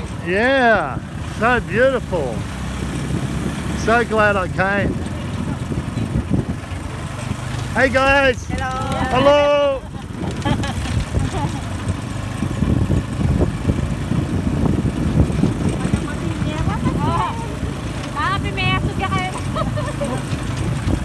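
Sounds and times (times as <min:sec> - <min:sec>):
motorcycle tricycle engine rumble: 0:00.0 - 0:21.0
voices calling out: 0:03.6 - 0:13.2, 0:14.9 - 0:21.0.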